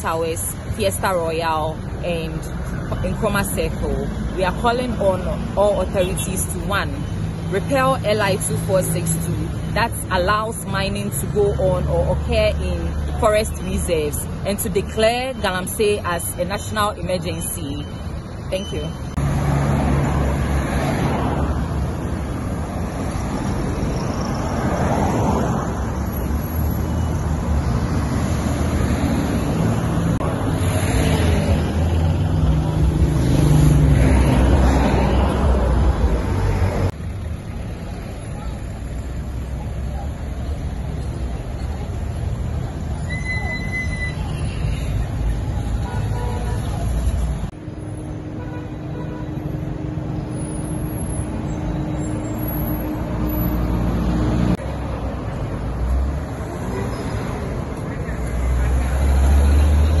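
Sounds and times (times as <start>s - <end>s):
city traffic: 0.0s - 60.0s.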